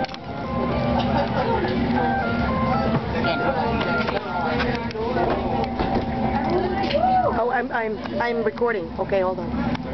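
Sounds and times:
electronic beeping tune: 0.0 - 4.6
passengers chattering: 0.0 - 9.9.

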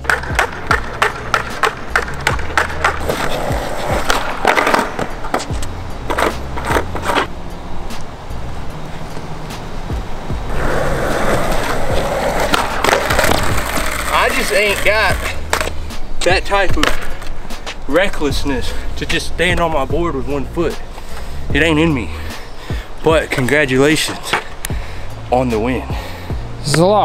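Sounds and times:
skateboard clacking: 0.0 - 7.3, 10.4 - 18.2, 23.2 - 24.8
skateboard wheels rolling: 0.0 - 22.2, 23.0 - 24.7
background music with bass line: 0.0 - 27.0.

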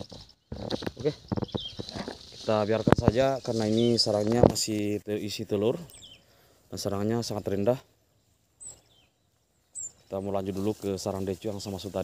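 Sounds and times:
leaves and twigs rustling: 0.0 - 12.0.

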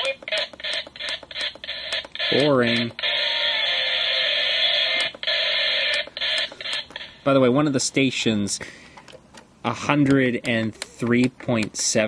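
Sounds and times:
radio static hiss: 0.0 - 7.8.

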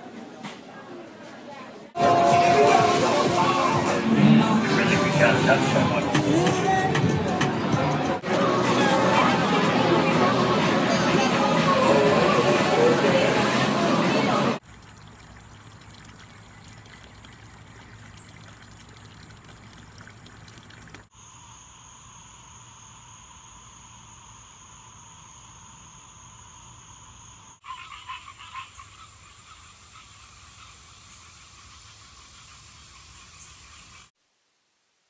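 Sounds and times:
fountain trickling into pond: 14.6 - 21.2
frogs calling: 14.9 - 34.1
insects trilling: 14.9 - 34.1.

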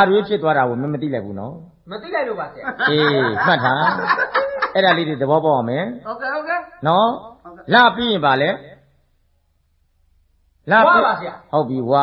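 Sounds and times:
person speaking: 2.0 - 5.7
person chuckling: 2.9 - 5.0.

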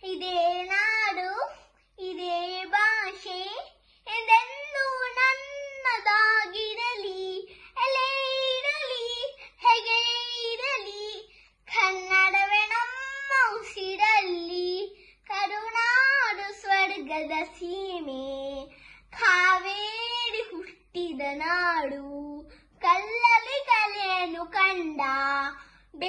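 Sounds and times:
boy singing unaccompanied: 0.0 - 26.0.

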